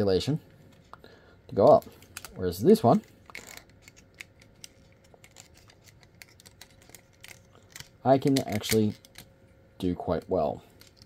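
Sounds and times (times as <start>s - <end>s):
plastic toy parts clicking: 3.3s - 9.3s.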